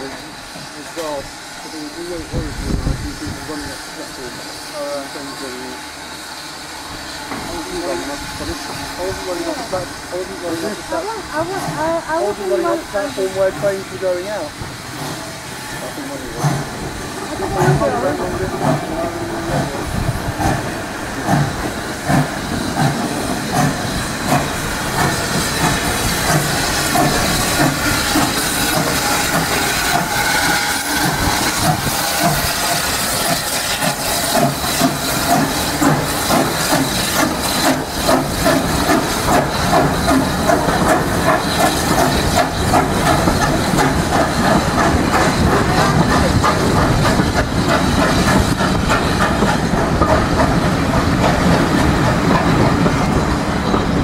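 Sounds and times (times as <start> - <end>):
locomotive exhaust chuffs: 0.0 - 51.2
steam hissing: 0.0 - 54.0
train wheels clicking over rail joints: 0.0 - 54.0.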